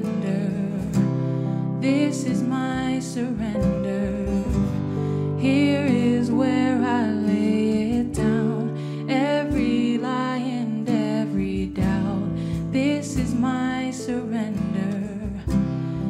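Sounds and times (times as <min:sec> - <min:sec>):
strummed acoustic guitar: 0:00.0 - 0:16.0
women singing: 0:00.0 - 0:16.0.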